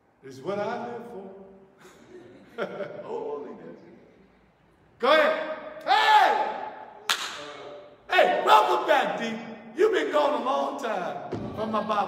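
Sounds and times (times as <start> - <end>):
man's loud exclamation echoing: 5.0 - 12.0.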